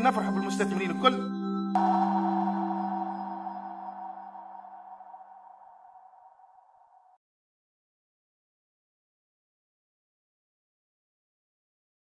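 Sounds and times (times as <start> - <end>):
held chord logo sting: 1.4 - 7.0.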